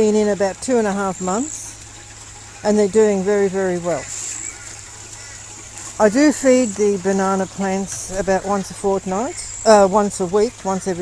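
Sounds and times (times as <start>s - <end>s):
faint running water: 0.0s - 11.0s.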